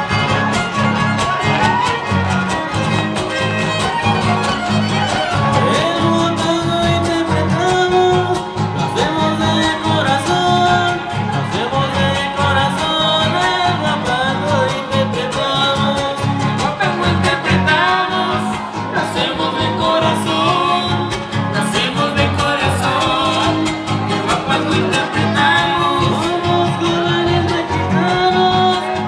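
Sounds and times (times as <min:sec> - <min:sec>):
fast strummed guitars: 0:00.0 - 0:29.0
violin: 0:00.0 - 0:29.0
person singing: 0:02.8 - 0:29.0.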